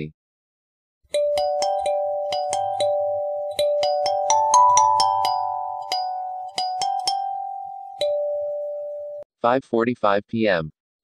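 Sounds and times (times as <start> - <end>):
bell-like melody: 1.1 - 9.2.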